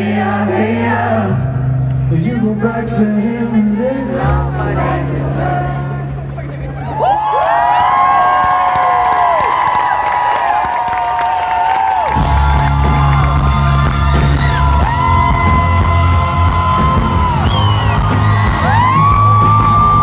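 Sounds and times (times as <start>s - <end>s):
crowd whooping and yelling: 6.8s - 20.0s
live pop-rock band playing: 12.1s - 20.0s.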